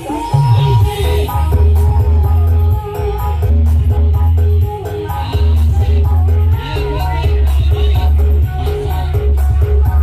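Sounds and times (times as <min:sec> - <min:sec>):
loud music through small speakers: 0:00.0 - 0:10.0.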